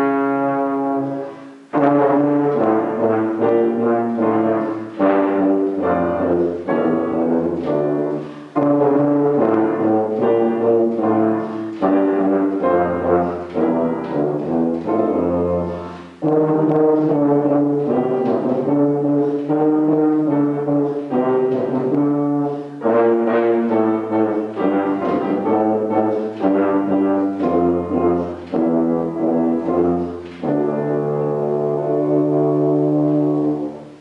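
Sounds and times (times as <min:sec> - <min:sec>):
tuba playing a melody: 0:00.0 - 0:34.0.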